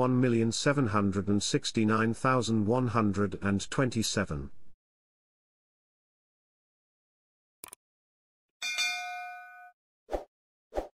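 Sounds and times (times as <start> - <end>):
notification ding chord: 8.6 - 9.7.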